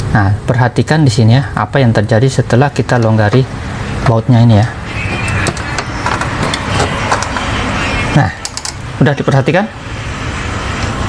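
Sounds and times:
road traffic: 2.4s - 11.0s.

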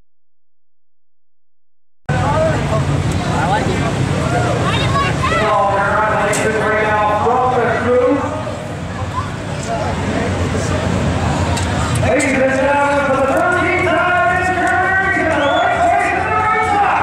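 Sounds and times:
people talking over one another: 2.1s - 17.0s.

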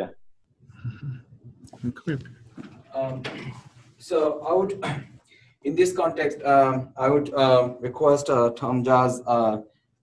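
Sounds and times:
person's soft utterances: 0.8s - 2.4s.

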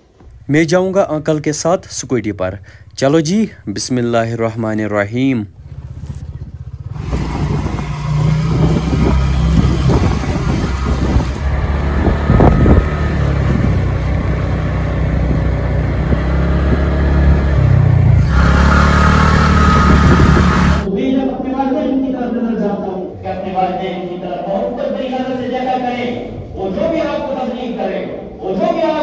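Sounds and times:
road noise: 0.0s - 20.9s
motor scooter engine: 5.6s - 20.9s.

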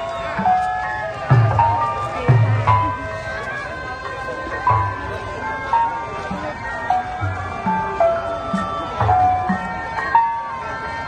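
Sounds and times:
slow melody of held notes: 0.0s - 11.0s
deep drum beats: 0.3s - 3.6s, 4.2s - 10.6s.

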